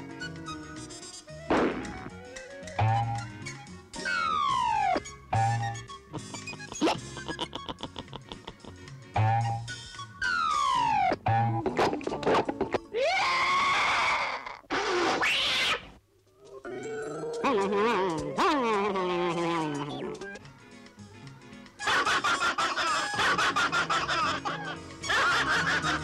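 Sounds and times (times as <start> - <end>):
cartoon music: 9.2 - 12.1, 16.5 - 20.4.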